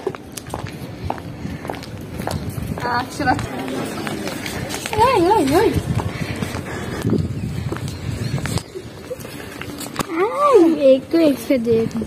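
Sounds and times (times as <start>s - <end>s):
footsteps on concrete: 0.0s - 12.0s.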